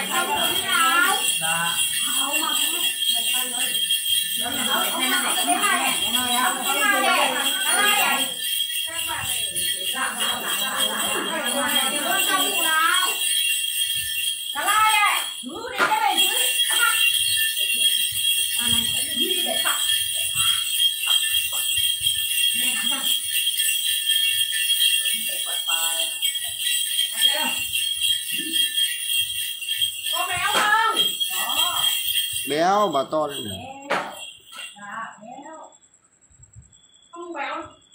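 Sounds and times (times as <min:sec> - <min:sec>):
small metal jingle bells shaken: 0:00.0 - 0:37.9.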